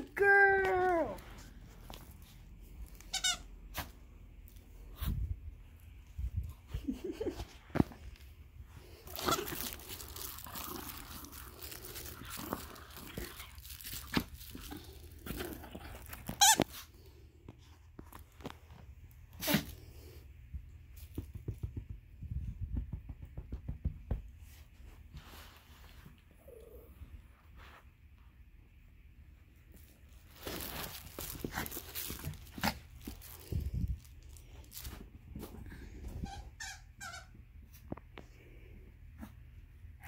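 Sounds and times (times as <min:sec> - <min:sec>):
dog toy squeaking: 0:03.0 - 0:03.5
squeaky toy squeak: 0:03.0 - 0:03.5, 0:36.2 - 0:37.4.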